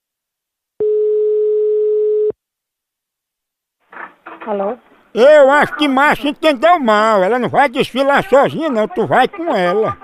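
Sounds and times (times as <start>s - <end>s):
telephone busy tone: 0.8s - 2.3s.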